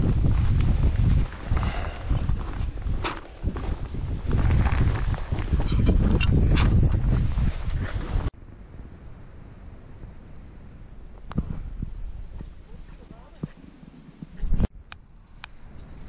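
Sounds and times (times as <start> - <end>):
footsteps crunching in snow: 0.0 - 5.7
wind buffeting microphone: 0.0 - 16.0.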